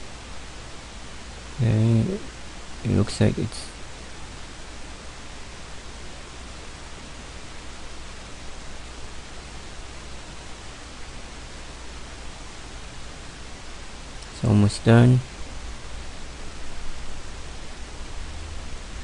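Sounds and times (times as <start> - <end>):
low hum: 0.0 - 3.8
steady hiss: 0.0 - 19.0.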